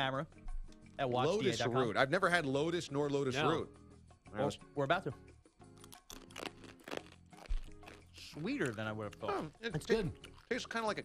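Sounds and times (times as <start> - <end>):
soft background music: 0.0 - 11.0
chip crunching while chewed: 5.8 - 10.6.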